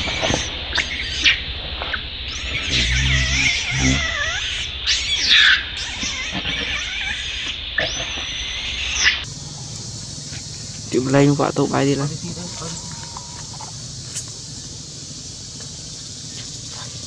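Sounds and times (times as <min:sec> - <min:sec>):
baby monkey screaming: 0:00.0 - 0:01.4, 0:02.3 - 0:14.7.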